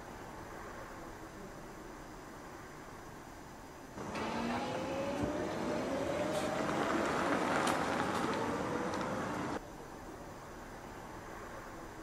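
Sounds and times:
faint hiss: 0.0s - 12.0s
tyre and road noise: 2.2s - 9.7s
car motor whine: 4.0s - 9.6s.

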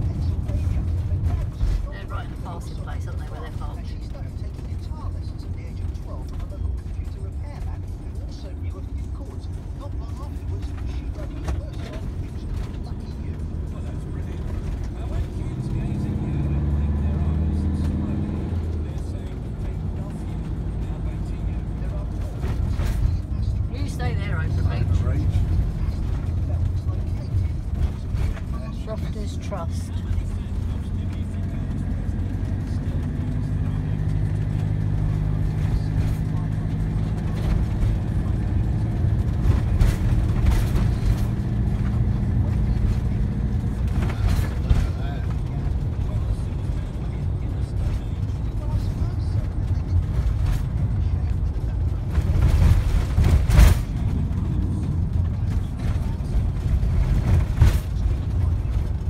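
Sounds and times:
vehicle engine and road drone: 0.0s - 59.0s.

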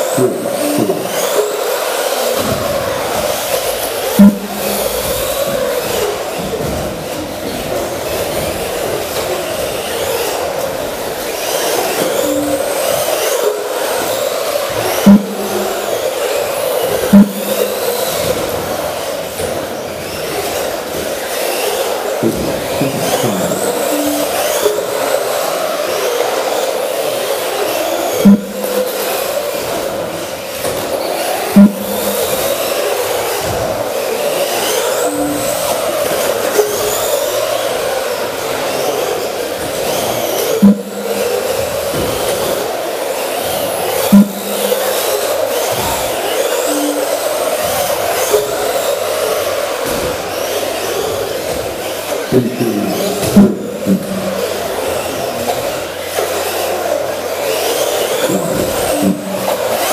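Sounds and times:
electric toy car motors whining: 0.0s - 59.9s
sharp knocks: 0.2s - 1.5s, 2.4s - 9.7s, 14.7s - 16.2s, 16.8s - 18.8s, 28.2s - 29.9s, 31.5s - 32.8s, 40.6s - 42.6s, 43.4s - 46.0s, 52.4s - 55.6s.

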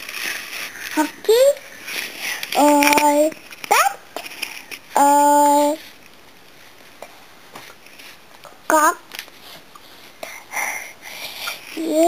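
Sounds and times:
child breathing softly: 10.0s - 11.8s.

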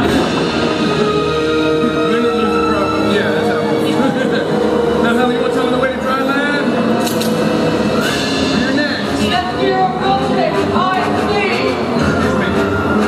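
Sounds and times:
music: 0.0s - 13.0s
voices talking and calling: 0.0s - 13.0s.

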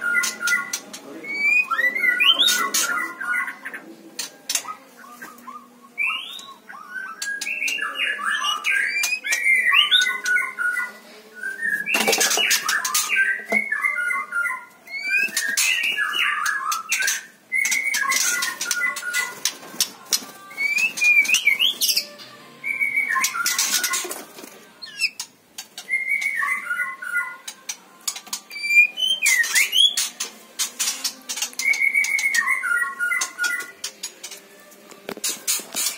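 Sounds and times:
bird singing whistled notes: 0.0s - 3.5s, 5.3s - 19.4s, 20.6s - 24.1s, 25.8s - 27.5s, 28.5s - 30.1s, 31.6s - 33.7s.

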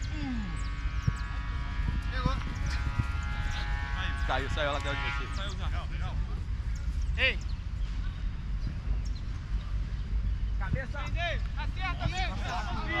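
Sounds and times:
wind rumble on microphone: 0.0s - 13.0s
distant players shouting: 10.7s - 13.0s.

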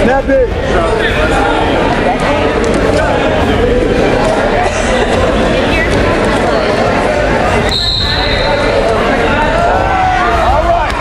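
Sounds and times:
spectators yelling and cheering: 6.2s - 11.0s.

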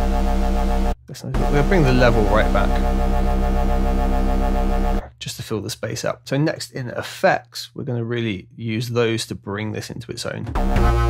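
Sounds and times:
deep synthesized bass note: 0.0s - 5.1s, 10.6s - 11.0s.

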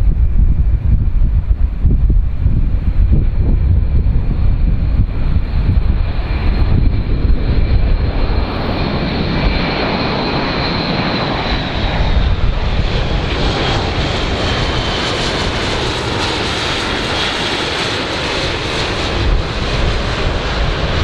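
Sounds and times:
turboprop aircraft drone: 0.0s - 21.0s.

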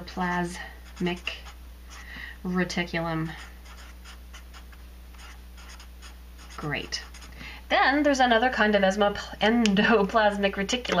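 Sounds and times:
steady low hum: 0.0s - 11.0s
marker writing on paper: 0.2s - 2.0s, 3.6s - 7.3s.

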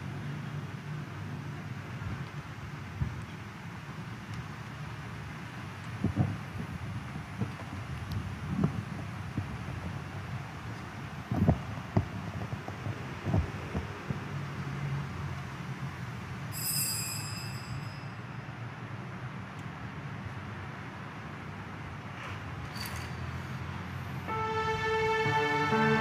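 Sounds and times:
high-pitched ringing tone: 16.6s - 18.4s.

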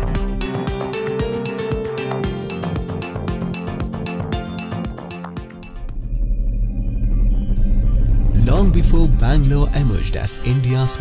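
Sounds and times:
low drone background music: 0.0s - 11.0s
man narrating: 8.4s - 11.0s.

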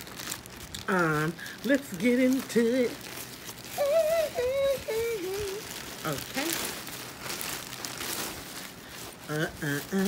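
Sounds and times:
plastic bag crinkling: 0.0s - 10.0s
woman humming: 3.7s - 6.7s.

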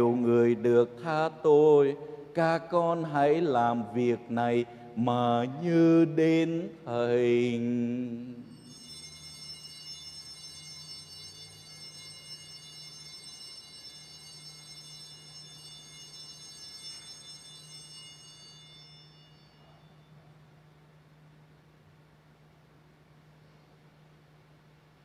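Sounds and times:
low steady hum: 0.0s - 25.0s
struck bell ringing: 8.4s - 20.3s.

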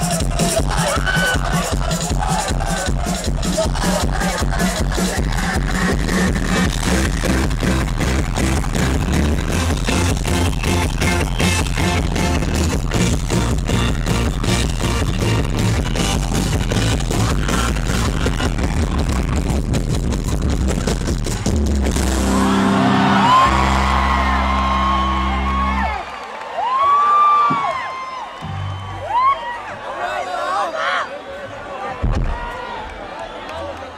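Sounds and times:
live rock band playing: 0.0s - 26.0s
crowd whistling and cheering: 0.0s - 33.9s.

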